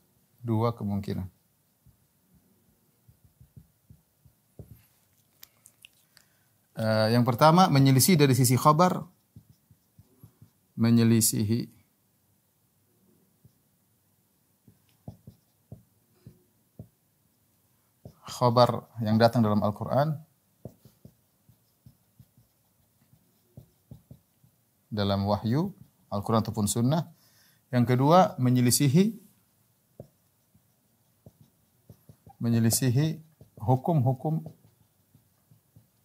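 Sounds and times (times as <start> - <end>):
pen tapping whiteboard: 1.8 - 2.1, 3.0 - 4.9, 8.1 - 10.6, 14.7 - 17.0, 18.0 - 18.4, 20.6 - 24.6, 29.9 - 36.0
marker tip squeaking: 20.6 - 24.5, 30.0 - 36.0.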